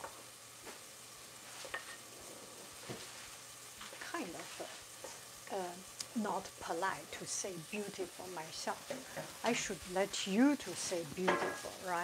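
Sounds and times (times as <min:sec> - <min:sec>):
vegetables sizzling in a pot: 0:00.0 - 0:12.0.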